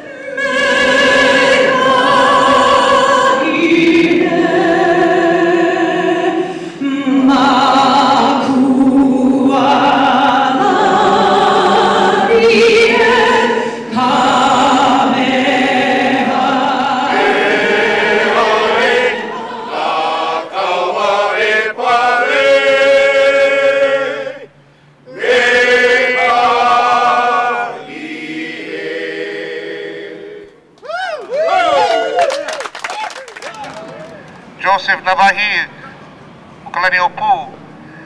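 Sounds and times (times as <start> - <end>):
group of voices singing: 0.0 - 30.7.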